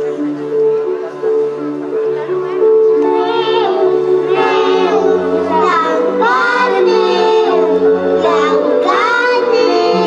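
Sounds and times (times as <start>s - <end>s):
instrumental accompaniment: 0.0s - 10.0s
children singing: 3.0s - 10.0s.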